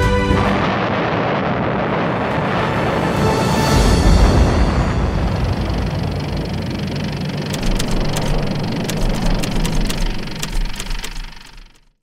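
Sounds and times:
heavy low rumble: 0.0s - 12.0s
sharp crackles: 5.3s - 11.9s.

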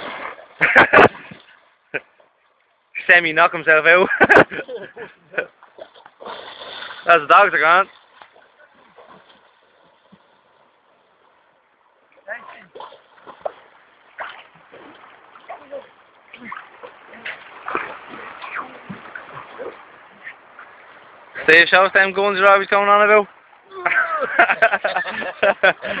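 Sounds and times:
dogs splashing in water: 5.6s - 7.2s, 7.8s - 10.6s, 12.4s - 20.4s.

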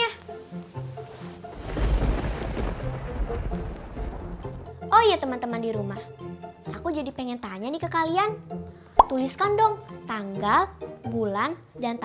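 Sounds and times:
soft background music: 0.0s - 12.0s
thunder rumble: 1.4s - 5.5s.

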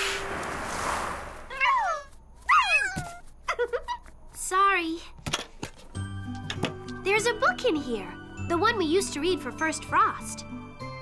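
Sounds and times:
soft rushing whoosh: 0.0s - 1.6s
cartoon cat-like calls: 1.5s - 3.2s.

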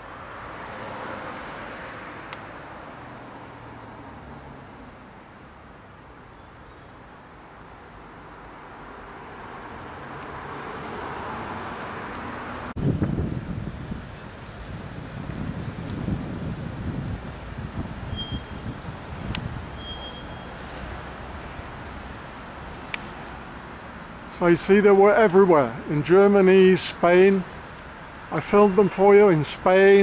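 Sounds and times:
street noise: 0.0s - 30.0s
wind buffeting microphone: 12.8s - 20.0s.

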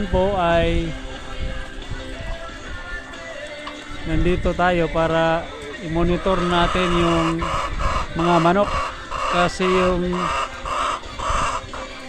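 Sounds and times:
hens calling: 1.6s - 12.0s.

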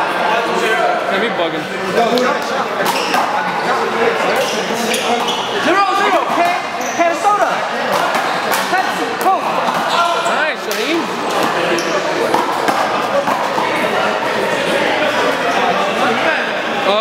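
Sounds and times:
chatter of people: 0.0s - 17.0s.

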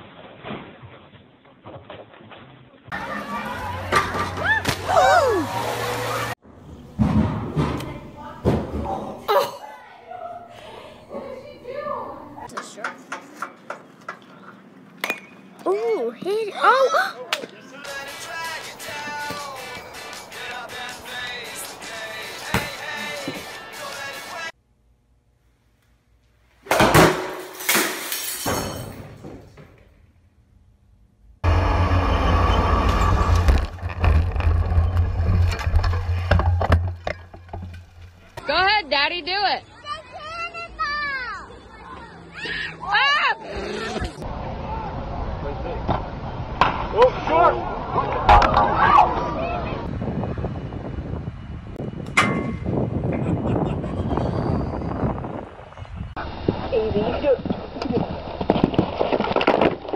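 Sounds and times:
wind rumble on microphone: 48.6s - 59.8s.

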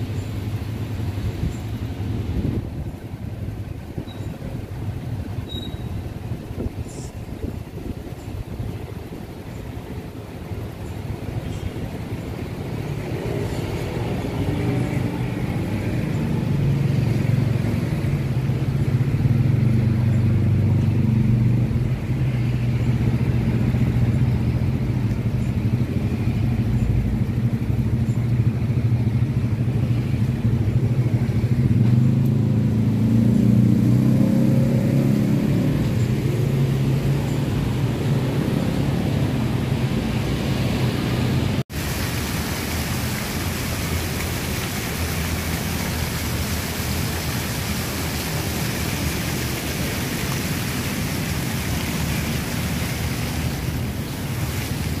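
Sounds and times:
vehicle engine humming: 0.0s - 55.0s
steady hiss: 41.7s - 55.0s.

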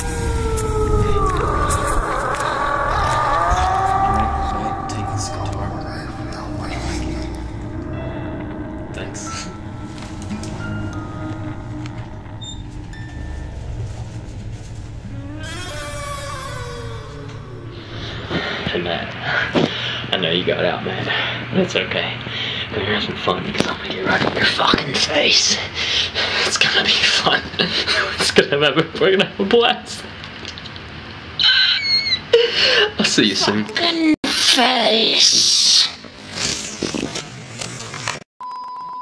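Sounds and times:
low steady drone: 0.0s - 23.5s
wooden door creaking open: 15.0s - 17.5s
man laughing with high squeal: 31.4s - 33.0s.

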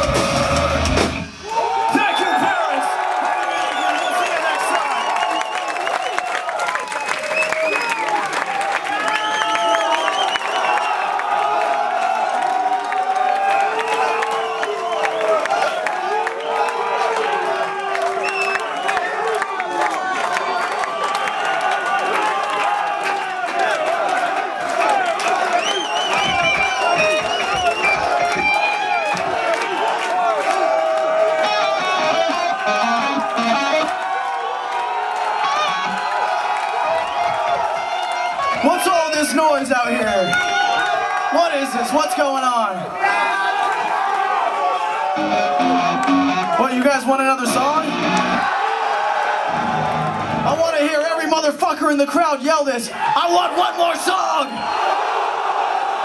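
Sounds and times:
crowd cheering and shouting: 0.0s - 56.0s
crowd clapping: 1.6s - 51.6s.

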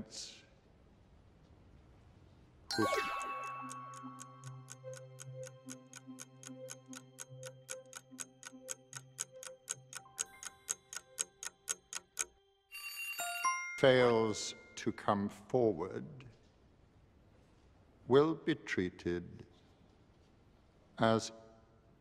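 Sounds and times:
countdown timer ticking: 2.7s - 12.4s
low sustained background music: 2.7s - 16.2s.

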